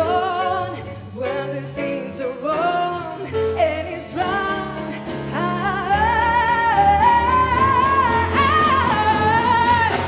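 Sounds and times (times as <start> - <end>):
woman singing jazz-blues: 0.0 - 10.0.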